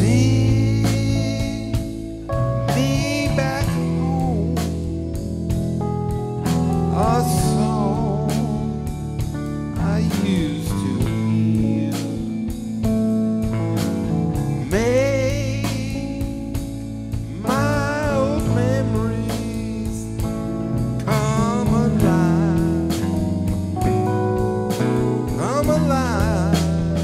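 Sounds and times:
electric lead guitar: 0.0s - 27.0s
live band playing country ballad: 0.0s - 27.0s.

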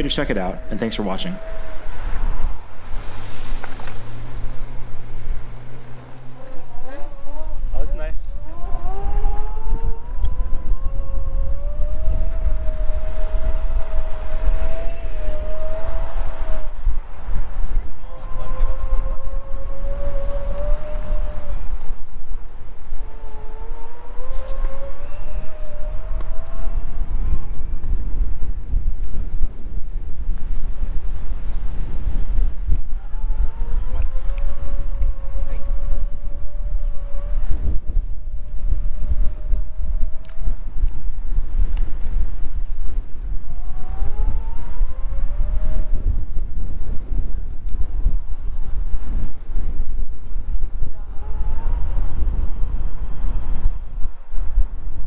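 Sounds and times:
electric scooter motor whining: 0.0s - 28.5s, 32.2s - 42.2s, 43.2s - 46.5s, 50.6s - 54.6s
wind and road noise: 0.0s - 55.0s.

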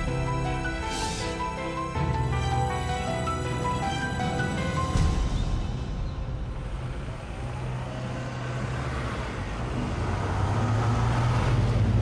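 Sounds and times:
vehicle engine and tyres: 3.3s - 12.0s.

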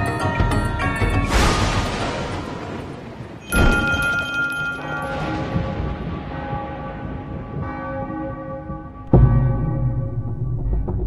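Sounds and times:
church bell ringing: 3.4s - 10.4s.

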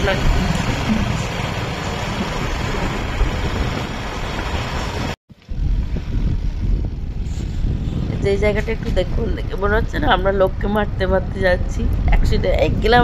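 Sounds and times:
wind and road noise: 0.0s - 13.0s.

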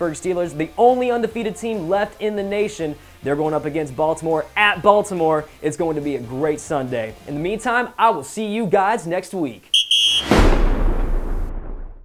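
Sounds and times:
fiery whoosh and boom: 10.2s - 12.0s.

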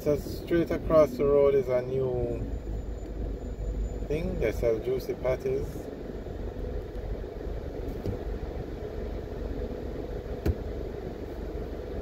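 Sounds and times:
car idling: 0.0s - 12.0s.

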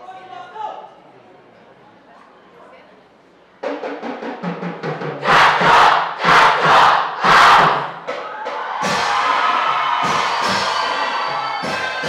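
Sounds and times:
heavy drum hits: 3.7s - 12.0s
group shouts in unison: 5.2s - 12.0s.

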